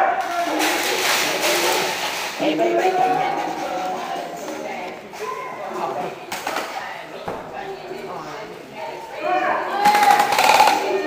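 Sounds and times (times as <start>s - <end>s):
voices: 0.0s - 11.0s
airsoft rifle full-auto burst: 9.9s - 10.8s.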